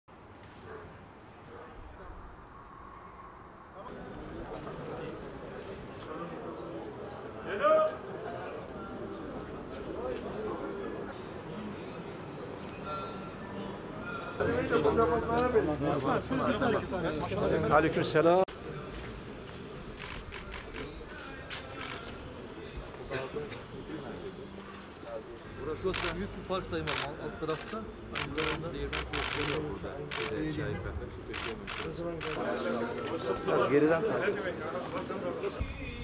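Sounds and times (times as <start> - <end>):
men talking: 14.4 - 19.2, 20.3 - 35.6
camera shutters clicking: 25.9 - 30.4, 31.4 - 32.5.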